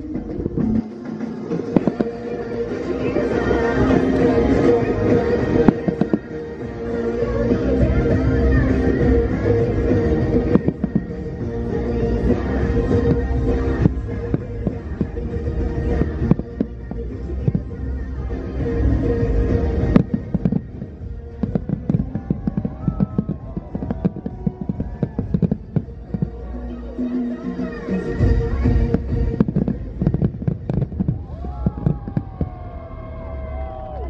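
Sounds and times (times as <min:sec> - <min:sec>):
music: 0:00.0 - 0:34.0
fireworks bangs: 0:00.1 - 0:26.6, 0:28.2 - 0:33.7.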